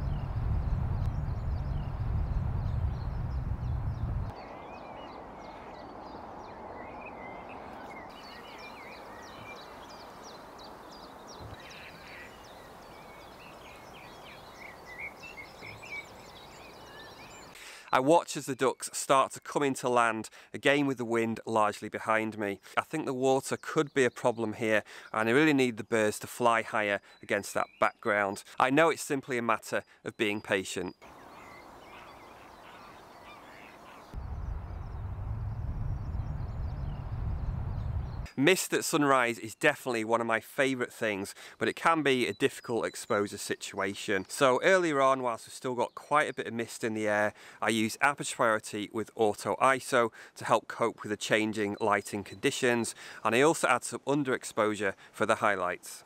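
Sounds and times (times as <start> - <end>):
steady low rumble: 0.0 - 4.3, 34.2 - 38.3
birds chirping and whistling: 6.8 - 17.6, 31.2 - 38.4
waterfowl calling: 11.5 - 12.8, 31.1 - 34.2.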